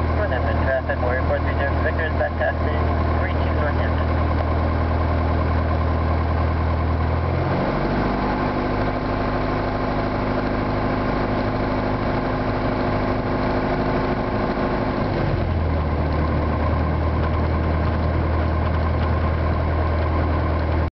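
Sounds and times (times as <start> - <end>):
light aircraft engine and propeller: 0.0 - 20.9.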